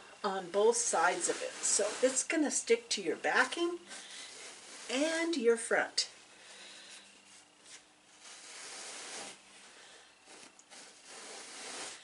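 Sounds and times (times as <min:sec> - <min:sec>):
cotton batting rustling: 0:00.0 - 0:12.0.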